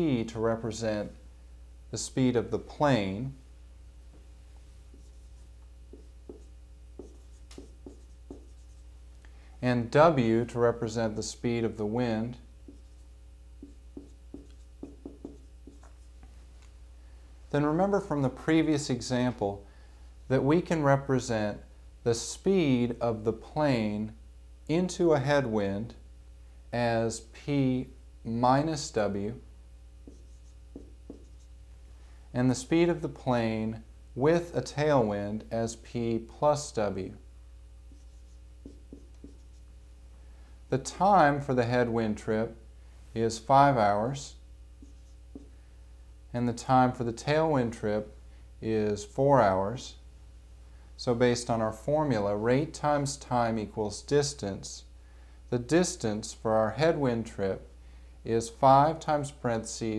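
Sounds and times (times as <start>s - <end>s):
steady low hum: 0.0s - 59.9s
marker writing on whiteboard: 4.6s - 9.1s, 12.6s - 16.3s, 30.0s - 31.6s, 37.9s - 39.7s, 44.8s - 45.6s.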